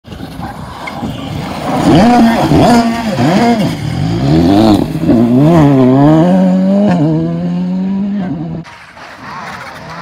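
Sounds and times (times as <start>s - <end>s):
rally car engine approaching: 0.2s - 10.0s.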